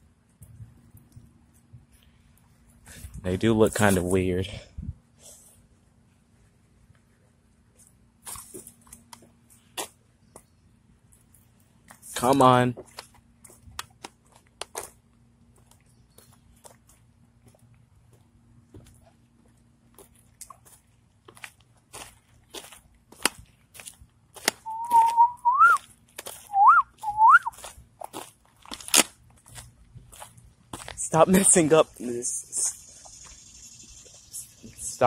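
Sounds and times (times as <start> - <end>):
person whistling: 24.6 - 25.8, 26.5 - 27.6.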